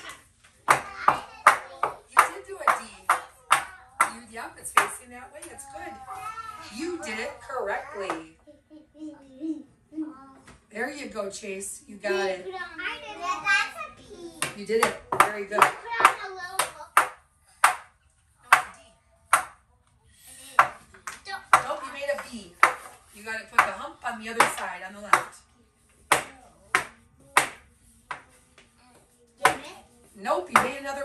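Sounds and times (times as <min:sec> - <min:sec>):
soft talking voices: 0:00.0 - 0:31.0.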